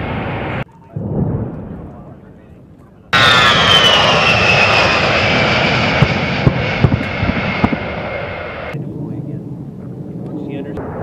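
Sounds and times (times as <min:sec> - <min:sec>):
jet engine whine passing by: 0:00.0 - 0:00.6, 0:03.1 - 0:09.6
low rumble: 0:00.0 - 0:11.0.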